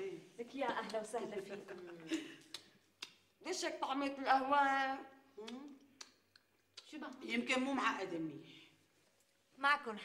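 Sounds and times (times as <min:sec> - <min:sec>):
women speaking: 0:00.0 - 0:02.4, 0:03.4 - 0:05.8, 0:06.9 - 0:08.6.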